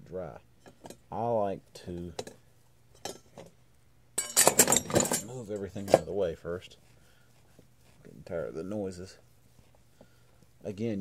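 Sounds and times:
hard objects clattering on workbench: 4.2s - 6.1s.

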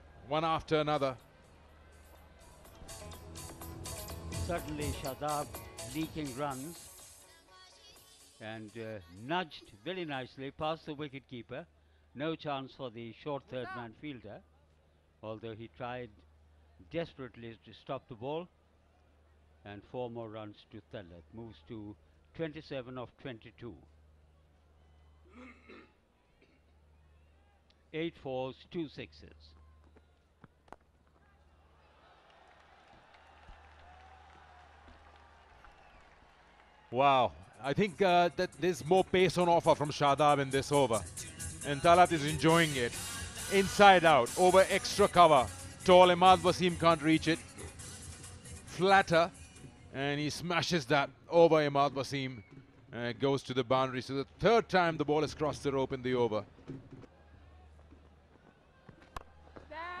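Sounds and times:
stadium crowd noise: 0.0s - 6.8s, 23.4s - 28.2s, 29.1s - 41.0s, 48.7s - 60.0s.

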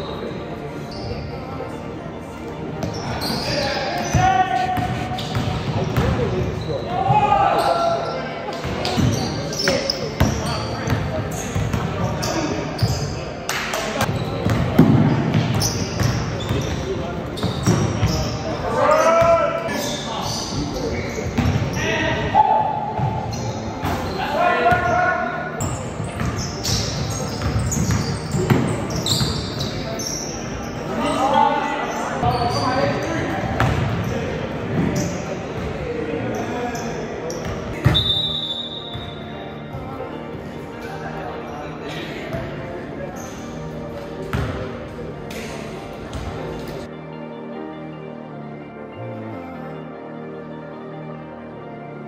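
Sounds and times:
sneakers squeaking on hardwood floor: 0.9s - 1.5s, 2.7s - 13.3s, 14.0s - 44.9s.

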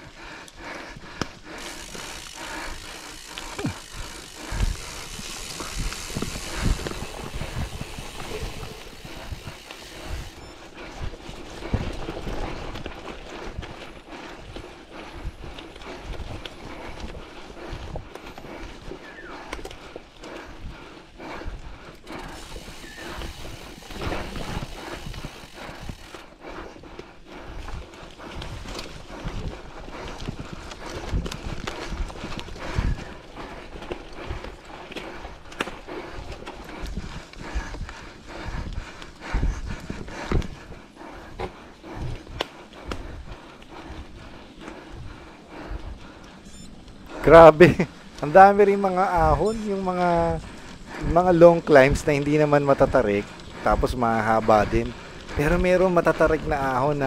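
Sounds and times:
bike tyres rolling over dirt: 0.1s - 57.0s
bike knocking and rattling: 1.1s - 19.9s, 22.0s - 27.0s.

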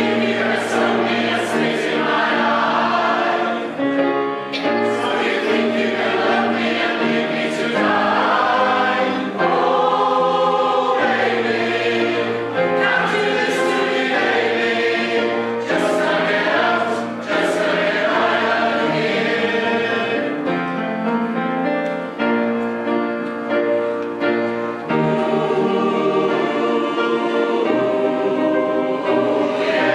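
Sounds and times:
mixed choir singing in harmony: 0.0s - 21.4s, 23.8s - 29.9s.

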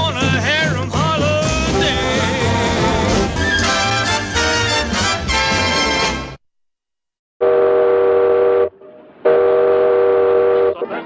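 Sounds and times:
steam whistle blasts: 7.4s - 10.8s.

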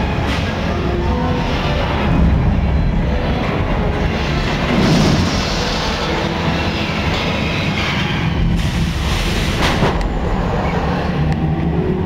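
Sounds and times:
deep rumbling roar of gas flames: 0.0s - 12.0s.

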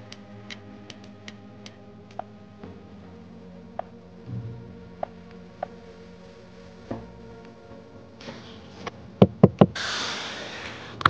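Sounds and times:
steady hiss: 8.0s - 11.0s
knuckle knocking on door panel: 9.2s - 9.8s.

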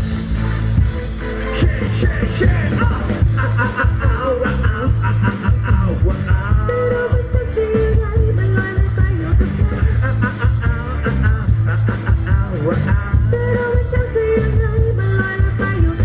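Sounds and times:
pop-rock band playing: 0.0s - 16.0s
woman singing lead: 2.4s - 16.0s.

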